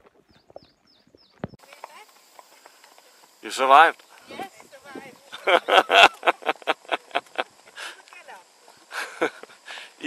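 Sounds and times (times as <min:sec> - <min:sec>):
bird chirping: 0:00.2 - 0:01.7
horse hooves clip-clopping on road: 0:01.3 - 0:10.0.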